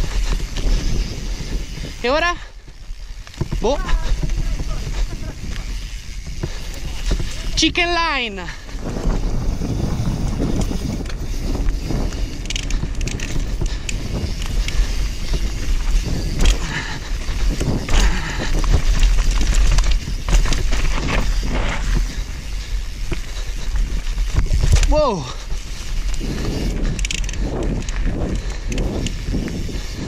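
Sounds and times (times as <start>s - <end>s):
wind rumble on microphone: 0.0s - 30.0s
tyres crunching over dirt and rocks: 2.6s - 7.9s, 8.6s - 29.7s
bike knocks and rattles: 2.7s - 7.7s, 8.8s - 30.0s.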